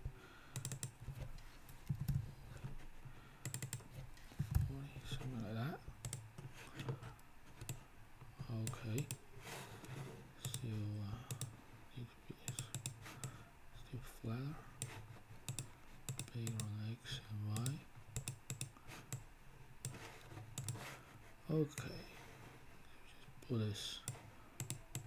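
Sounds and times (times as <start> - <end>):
keyboard typing: 0.5 - 1.0, 3.4 - 3.8, 6.0 - 6.2, 11.3 - 11.5, 12.5 - 13.4, 14.8 - 16.7, 17.5 - 20.0, 20.6 - 20.8, 24.1 - 25.0.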